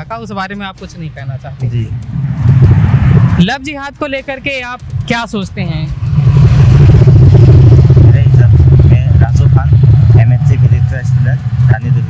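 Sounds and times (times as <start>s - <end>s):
vehicle engine running: 4.4s - 12.0s.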